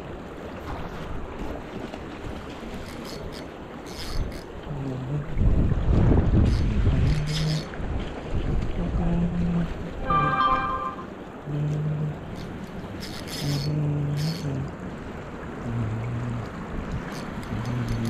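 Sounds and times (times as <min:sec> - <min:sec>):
wind buffeting microphone: 0:05.1 - 0:10.0
river current rushing: 0:09.9 - 0:11.3.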